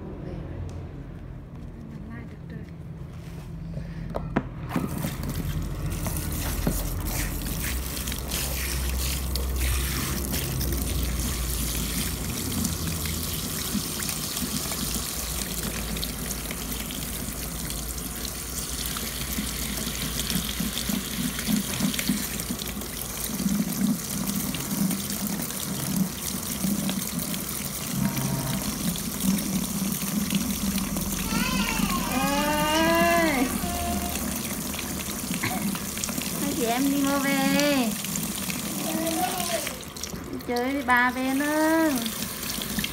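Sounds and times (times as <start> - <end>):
shower head spraying water: 4.9 - 16.6.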